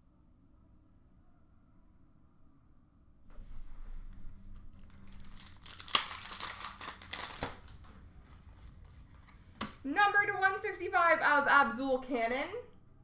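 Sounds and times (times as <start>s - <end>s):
foil wrapper tearing and crinkling: 4.8s - 7.8s.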